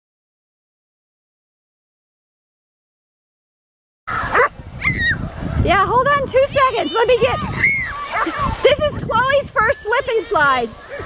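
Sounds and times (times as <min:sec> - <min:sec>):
dog barking: 0:04.3 - 0:04.6.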